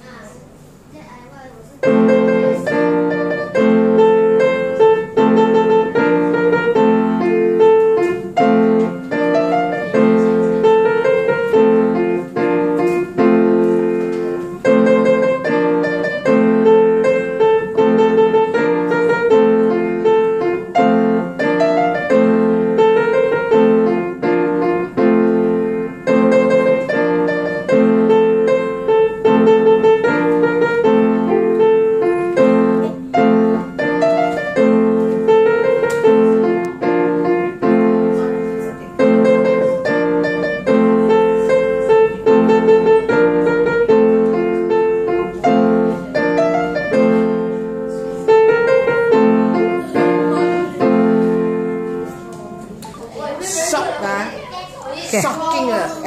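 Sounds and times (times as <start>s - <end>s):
piano piece: 1.7s - 56.0s.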